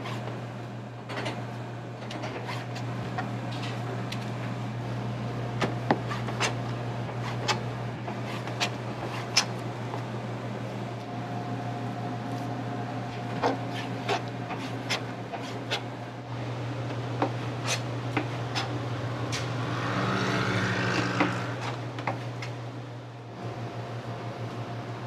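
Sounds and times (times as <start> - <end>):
kitchen equipment hum: 0.0 - 25.0.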